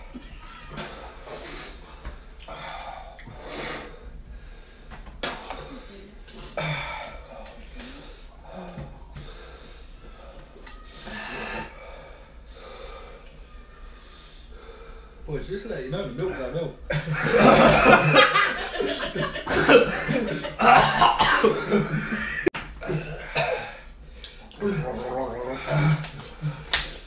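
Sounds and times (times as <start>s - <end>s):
men breathing hard through mouth: 1.0s - 13.4s.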